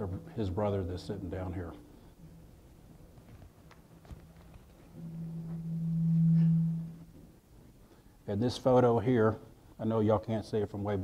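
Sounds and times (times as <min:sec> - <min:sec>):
low microphone feedback howl: 0:04.8 - 0:07.6.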